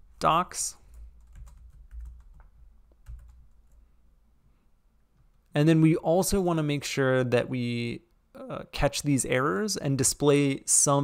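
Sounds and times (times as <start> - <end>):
computer keyboard typing: 0.9 - 3.8.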